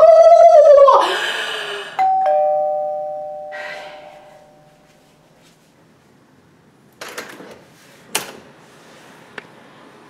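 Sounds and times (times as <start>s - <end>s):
woman screaming: 0.0s - 1.2s
two-note doorbell chime: 2.0s - 5.0s.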